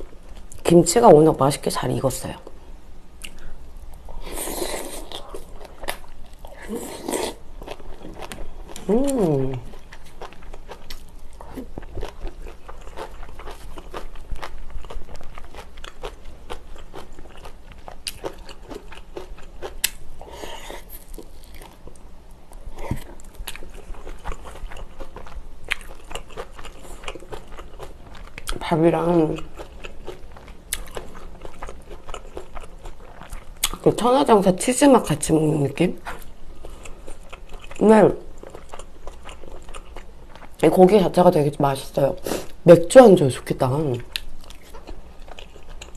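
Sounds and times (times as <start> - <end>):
chewing and biting food: 4.6 - 20.0, 22.8 - 28.6, 29.2 - 33.8, 36.1 - 40.6, 44.0 - 45.9
person humming: 8.8 - 9.7.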